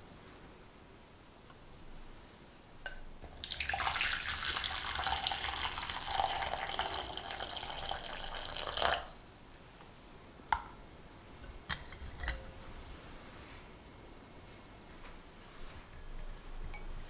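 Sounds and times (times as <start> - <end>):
water pouring into glass bowl: 3.3 - 9.5
glass clink: 16.2 - 17.0.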